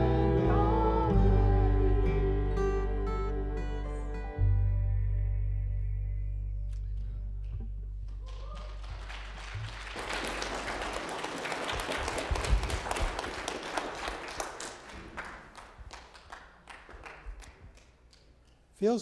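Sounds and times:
worship song final chord: 0.0 - 4.6
congregation applauding: 8.1 - 18.4.

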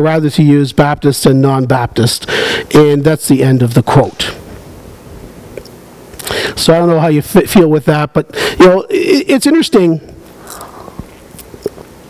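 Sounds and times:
man sipping and swallowing water: 10.3 - 11.9.

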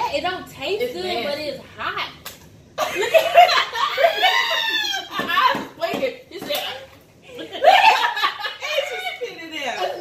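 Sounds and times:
women laughing and exclaiming: 2.8 - 10.0.

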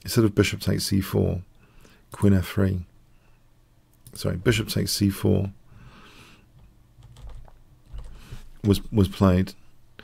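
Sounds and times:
soft breath: 1.6 - 2.1, 3.1 - 3.6, 5.6 - 6.6, 8.0 - 8.6
faint keyboard clicks: 6.6 - 8.8.

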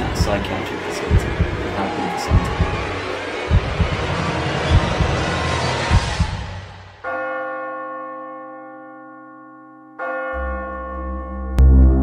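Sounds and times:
deep low drone: 10.4 - 12.0.

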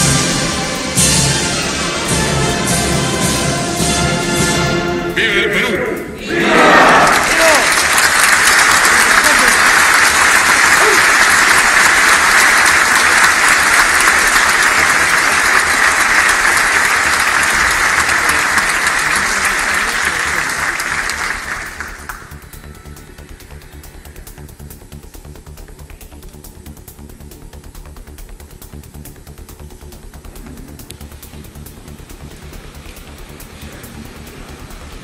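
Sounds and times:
large crowd applauding: 6.3 - 23.6.

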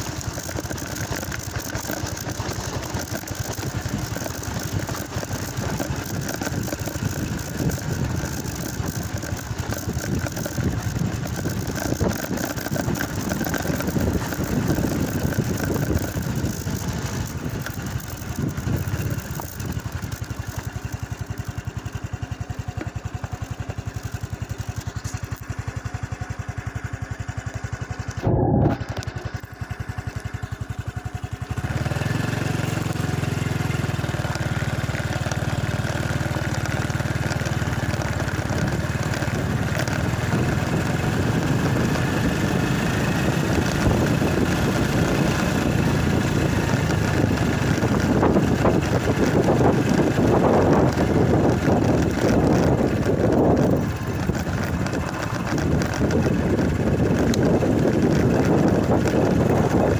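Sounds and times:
small motorcycle engine running: 0.0 - 59.9.

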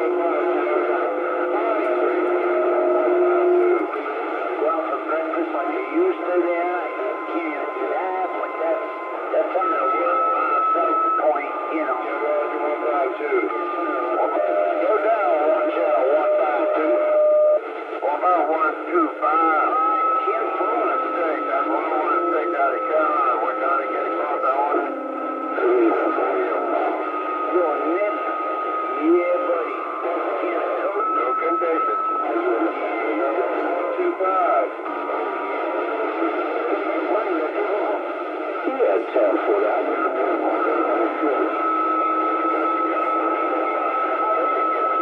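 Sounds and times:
radio whistle tones: 0.0 - 3.9, 4.7 - 17.6, 19.0 - 34.7
garbled voices over radio: 0.0 - 41.6.

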